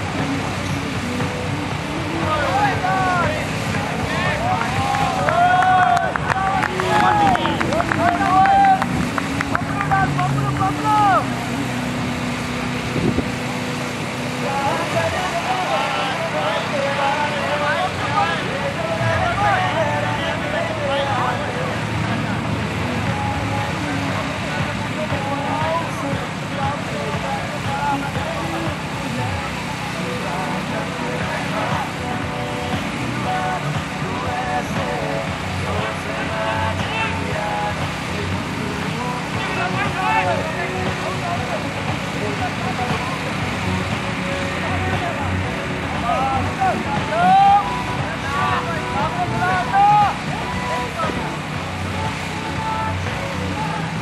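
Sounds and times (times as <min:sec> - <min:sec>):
people talking and calling out: 0:00.0 - 0:54.0.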